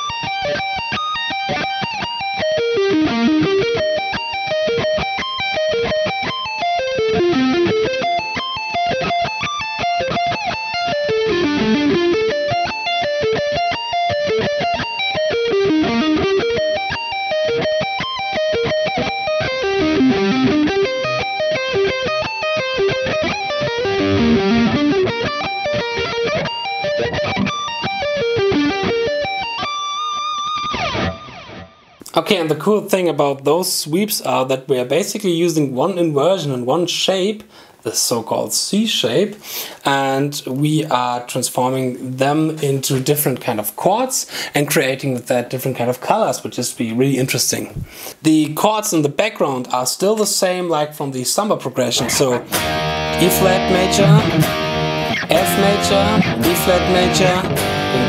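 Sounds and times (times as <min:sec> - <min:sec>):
electric guitar arpeggios: 0:00.0 - 0:32.1, 0:52.0 - 0:58.0.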